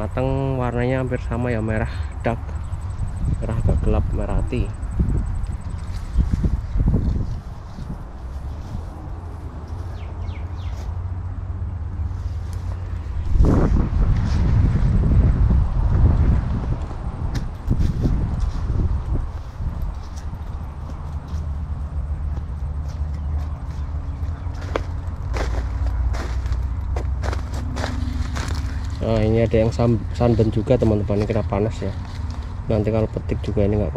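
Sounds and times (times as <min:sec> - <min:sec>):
low rumble of wind: 0:00.0 - 0:33.9
footsteps on grass: 0:05.7 - 0:11.0, 0:17.3 - 0:32.7.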